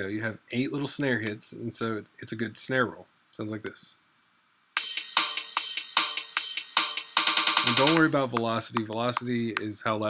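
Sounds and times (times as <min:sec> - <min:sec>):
programmed rock drum beat: 0:04.8 - 0:09.6.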